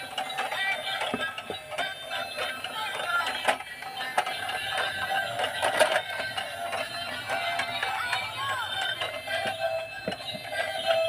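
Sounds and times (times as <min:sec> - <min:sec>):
toy car electronic tune: 0:00.0 - 0:11.0.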